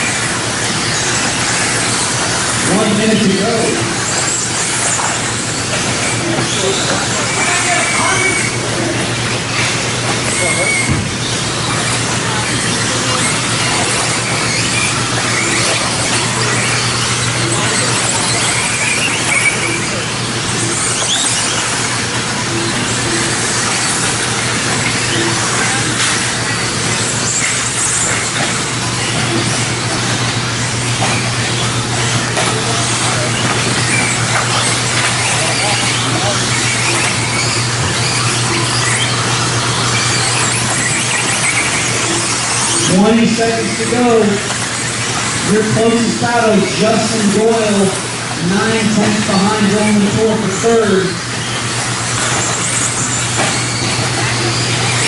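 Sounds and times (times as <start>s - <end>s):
electric model cars whining: 0.0s - 55.0s.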